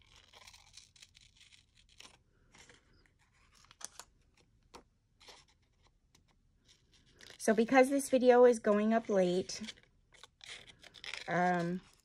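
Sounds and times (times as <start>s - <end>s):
scissors snipping paper: 0.0s - 2.8s, 8.7s - 12.0s
paper rustling: 0.0s - 12.0s.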